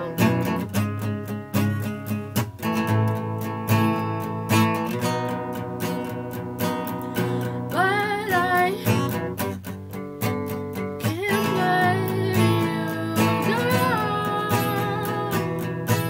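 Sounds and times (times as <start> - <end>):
acoustic guitar strummed: 0.0 - 16.0
woman singing: 7.2 - 9.4, 11.0 - 16.0.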